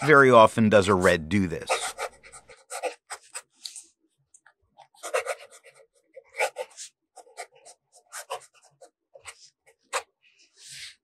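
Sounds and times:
pen nib scratching on paper: 0:00.8 - 0:03.9, 0:04.8 - 0:11.0.

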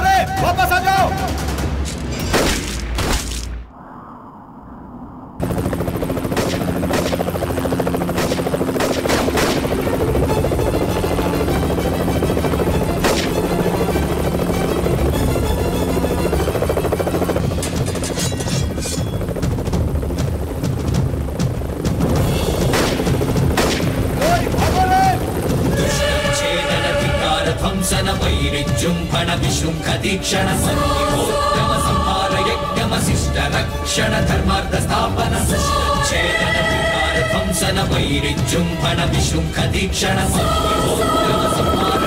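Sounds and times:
action film score: 0:00.0 - 0:42.0.

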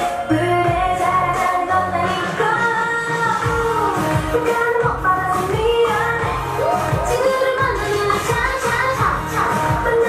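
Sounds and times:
pop dance song over sound system: 0:00.0 - 0:10.0.

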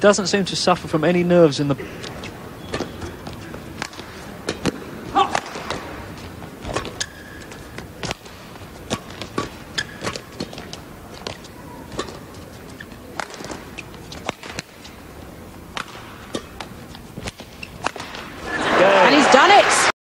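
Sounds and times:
low hall background: 0:00.0 - 0:19.9
shoes squeaking on court: 0:01.5 - 0:18.4
racket striking shuttlecock: 0:02.0 - 0:18.4.

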